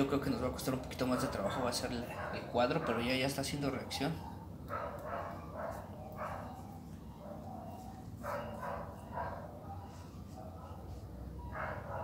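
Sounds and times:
dog barking: 1.0 - 3.2, 4.1 - 12.0.

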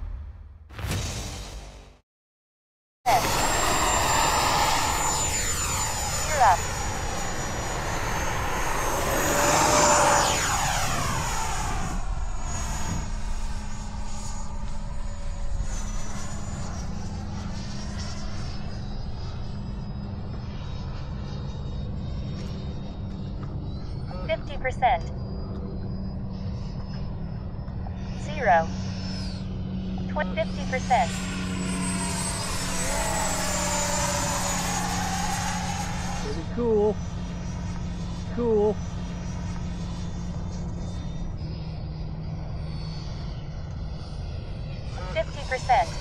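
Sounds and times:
model jet fans whining: 3.1 - 24.2, 24.8 - 46.0.

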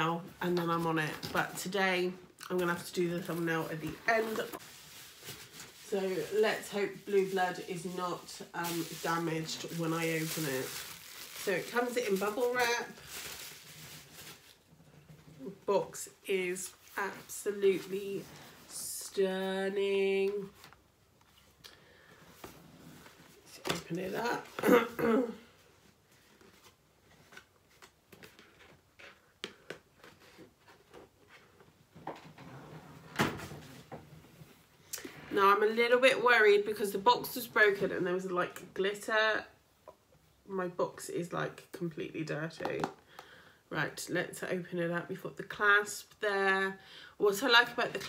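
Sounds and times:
bubble wrap rustling: 2.7 - 15.4.

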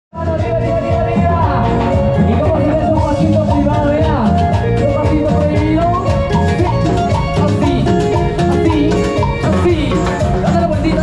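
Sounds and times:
live band playing latin dance music: 0.1 - 11.0
steady drum beat: 0.2 - 11.0.

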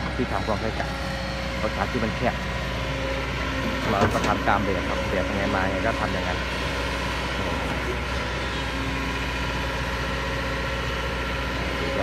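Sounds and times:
excavator diesel engine running: 0.0 - 12.0.

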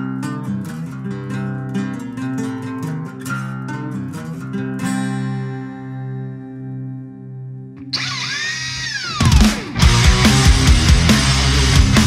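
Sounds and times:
acoustic guitar picking: 0.0 - 6.5
drill screeching on guitar strings: 7.8 - 10.6.

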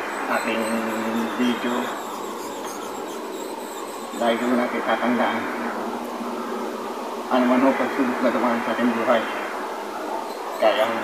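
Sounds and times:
even hiss and hum: 0.0 - 11.0.

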